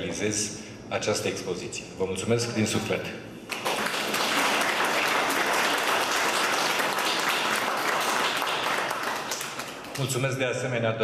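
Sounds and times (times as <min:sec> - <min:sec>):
audience applauding: 0:03.5 - 0:10.2.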